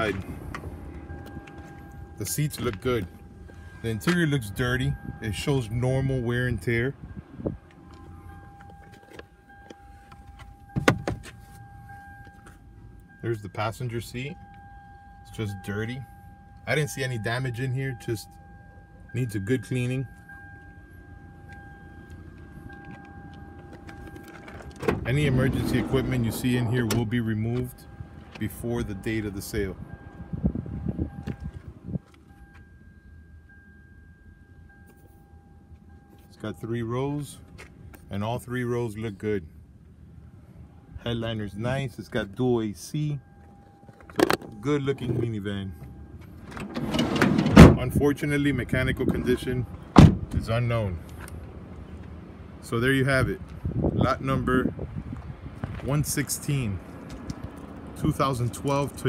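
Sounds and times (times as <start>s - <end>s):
dull thump: 10.8s - 11.4s, 50.0s - 50.3s.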